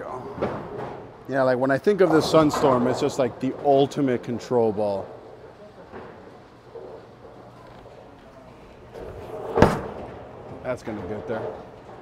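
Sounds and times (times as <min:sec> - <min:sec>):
faint bowling alley background: 0:00.0 - 0:12.0.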